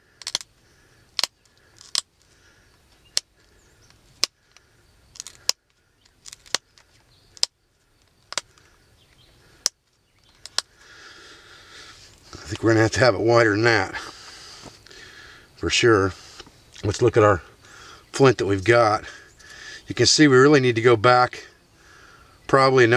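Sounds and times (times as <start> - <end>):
stone flaking clicks: 0.1 - 0.5, 1.2 - 2.3, 2.9 - 10.9.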